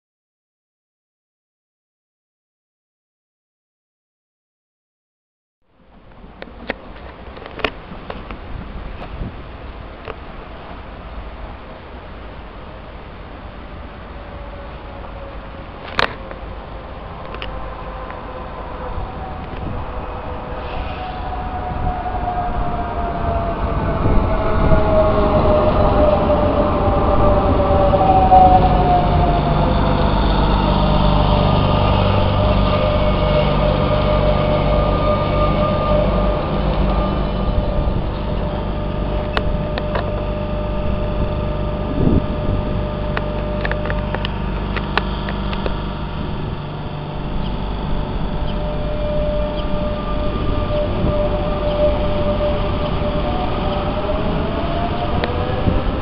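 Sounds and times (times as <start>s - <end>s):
electric train rumble and motor whine: 5.7s - 56.0s.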